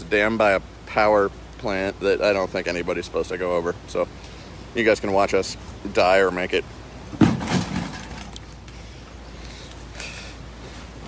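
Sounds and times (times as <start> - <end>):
low background rush: 0.0 - 11.0.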